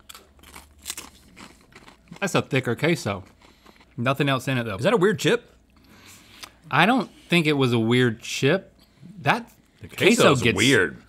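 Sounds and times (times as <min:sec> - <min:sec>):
chip crunching being chewed: 0:00.0 - 0:04.0.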